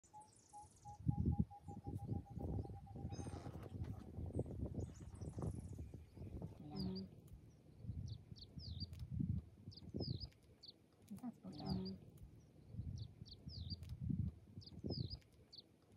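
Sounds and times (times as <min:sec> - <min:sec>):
bird high chirps: 0:00.0 - 0:10.8, 0:11.4 - 0:14.0, 0:14.6 - 0:15.7
bird repeated pips: 0:00.1 - 0:04.7, 0:06.4 - 0:09.0, 0:09.8 - 0:14.0.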